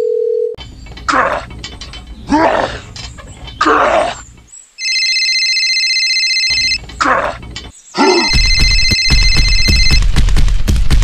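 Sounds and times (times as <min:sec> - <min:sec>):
vocal exclamation: 0:01.1 - 0:01.5, 0:02.2 - 0:03.0, 0:03.6 - 0:04.2, 0:07.0 - 0:07.4, 0:08.0 - 0:08.4
electronic phone ringtone: 0:04.8 - 0:06.8, 0:08.3 - 0:10.0
fast beat: 0:08.3 - 0:11.0.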